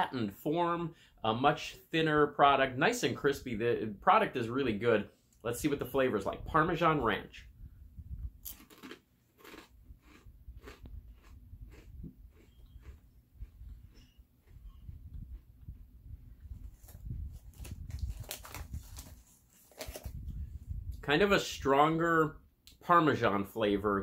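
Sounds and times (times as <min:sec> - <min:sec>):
person chewing crispy crackers: 0:08.4 - 0:15.7.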